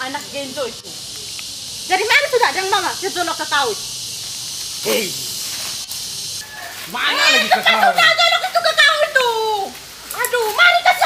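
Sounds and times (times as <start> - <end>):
insects hissing: 0.0 - 11.0.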